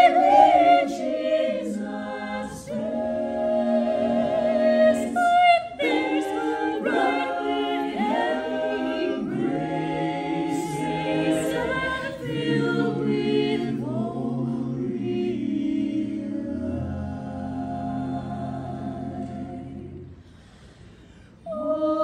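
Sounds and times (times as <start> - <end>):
mixed choir singing in harmony: 0.0 - 20.8, 21.4 - 22.0.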